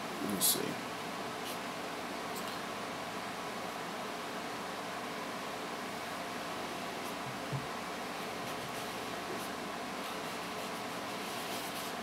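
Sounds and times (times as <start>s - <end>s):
fan hiss: 0.0s - 12.0s.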